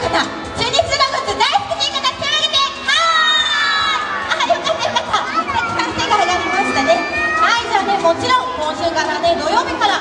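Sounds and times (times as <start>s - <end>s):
children shouting together: 5.1s - 7.8s.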